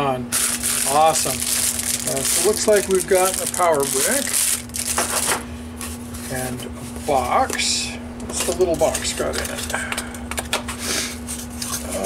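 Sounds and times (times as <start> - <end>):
furnace humming: 0.0 - 12.0.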